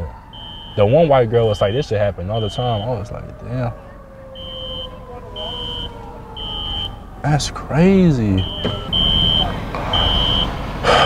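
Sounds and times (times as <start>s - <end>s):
car warning chime beeping: 0.0s - 3.0s, 4.3s - 7.2s, 8.3s - 11.0s.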